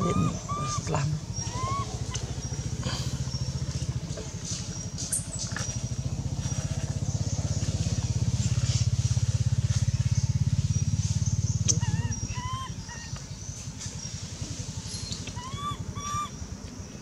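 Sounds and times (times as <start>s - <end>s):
small engine running: 0.0s - 17.0s.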